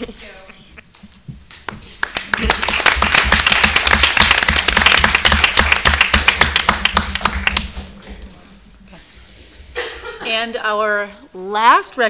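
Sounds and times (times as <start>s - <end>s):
crowd applause: 1.6s - 8.5s.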